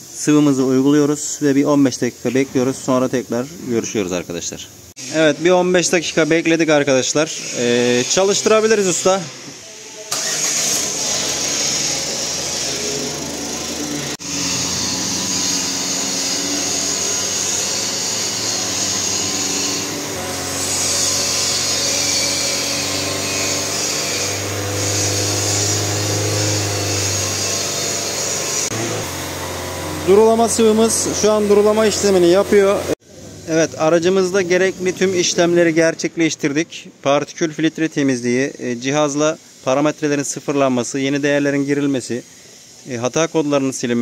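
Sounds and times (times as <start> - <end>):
diesel engine starting and running: 10.1 - 16.0, 28.6 - 35.0.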